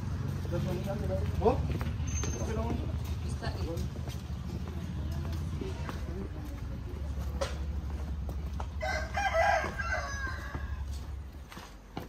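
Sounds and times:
footsteps on dirt path: 0.0s - 12.0s
rooster crowing: 8.8s - 11.1s.

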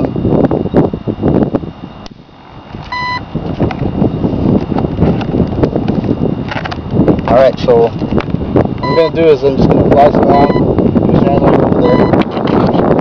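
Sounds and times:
wind buffeting microphone: 0.0s - 13.0s
short electronic beep: 2.9s - 3.3s, 8.8s - 9.1s, 10.4s - 10.7s, 11.8s - 12.2s.

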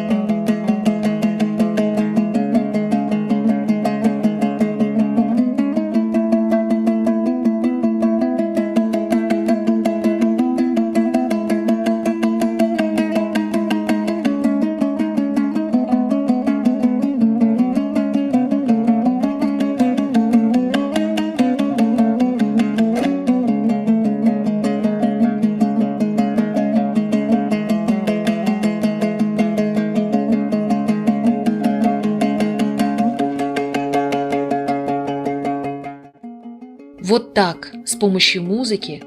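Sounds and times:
rapid lute strumming: 0.0s - 39.0s.

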